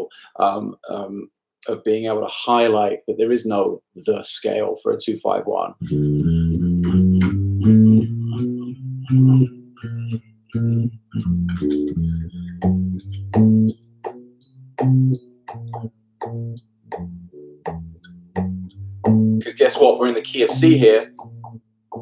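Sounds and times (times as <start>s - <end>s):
electric bass guitar playing: 5.7s - 22.0s.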